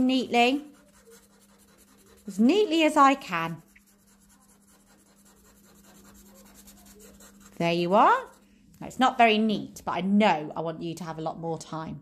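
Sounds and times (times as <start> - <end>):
felt-tip pen scribbling on paper: 0.0 - 8.4.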